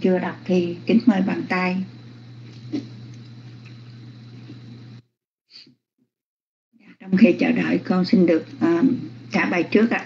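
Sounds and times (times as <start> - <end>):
electrical hum and hiss: 0.0 - 5.1, 6.8 - 10.0.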